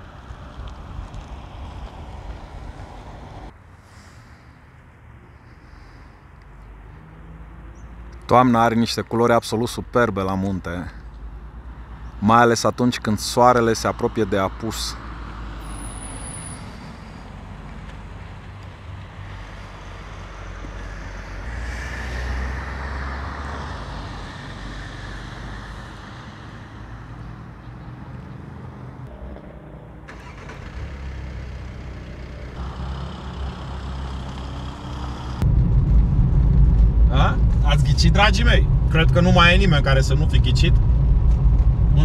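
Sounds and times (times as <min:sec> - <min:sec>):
car road noise from cabin: 0:29.0 - 0:42.0
low outdoor rumble: 0:31.6 - 0:42.0.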